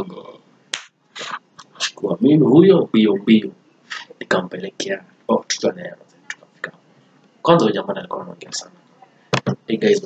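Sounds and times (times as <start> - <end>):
finger snaps: 0.7 - 0.9.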